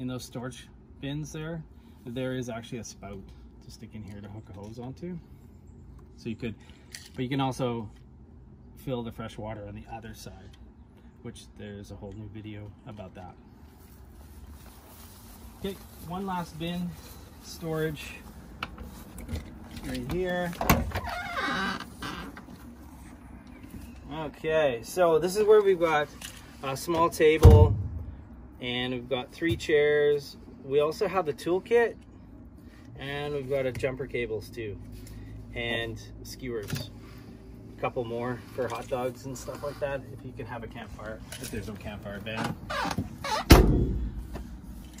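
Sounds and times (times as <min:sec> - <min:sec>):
storage bin door slamming: 0:27.4 - 0:28.1, 0:43.4 - 0:44.2.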